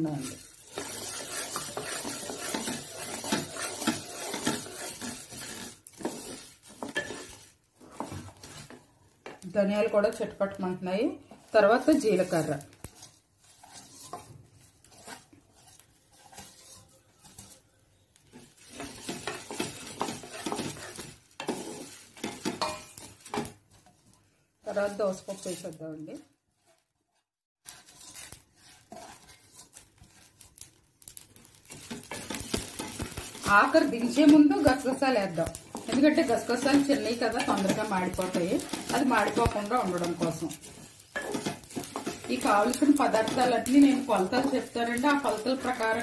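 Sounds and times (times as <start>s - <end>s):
spatula scraping seeds in metal pan: 0.0s - 46.0s.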